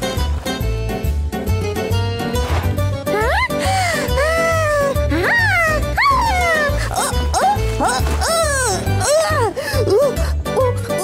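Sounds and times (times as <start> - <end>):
cartoon music with bouncing beat: 0.0 - 11.0
cartoon character high cries: 3.2 - 7.6.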